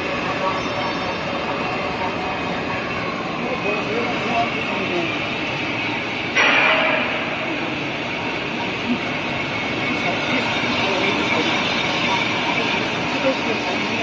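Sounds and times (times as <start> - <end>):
printing machine running: 0.0 - 14.0.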